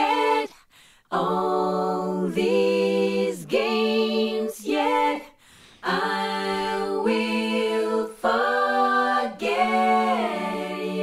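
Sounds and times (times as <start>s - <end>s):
a cappella harmony vocals: 0.0s - 11.0s.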